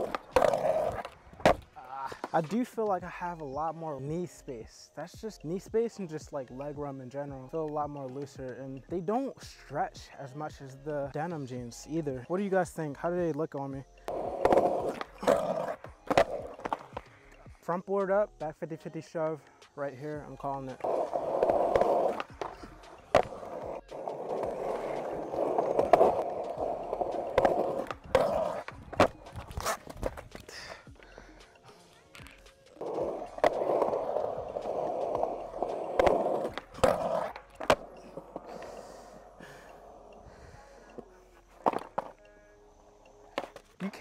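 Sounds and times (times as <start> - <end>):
skateboard grinding on a ledge: 0.0 - 1.7, 14.1 - 17.0, 20.8 - 30.4, 32.8 - 38.7
skateboard landings: 0.0 - 2.6, 14.1 - 17.2, 20.8 - 30.5, 32.1 - 38.8, 41.6 - 42.2, 43.3 - 43.8
skateboard popping clacks: 0.0 - 2.6, 14.1 - 17.4, 20.7 - 40.2, 40.9 - 42.2, 43.0 - 44.0
skateboard wheels rolling on concrete: 0.0 - 3.4, 11.8 - 18.6, 19.6 - 42.2, 43.0 - 44.0.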